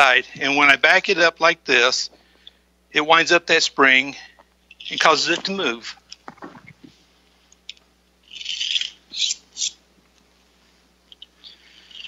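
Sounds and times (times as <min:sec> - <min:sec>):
toy car motor whirring: 0:08.3 - 0:09.7.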